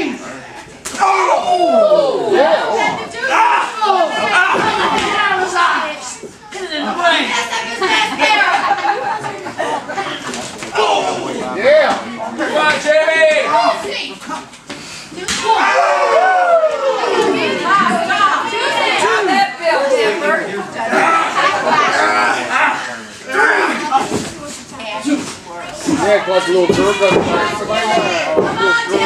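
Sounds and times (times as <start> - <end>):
people yelling: 0.9 - 5.8, 15.4 - 19.4
voices shouting: 0.9 - 5.8, 15.4 - 19.5.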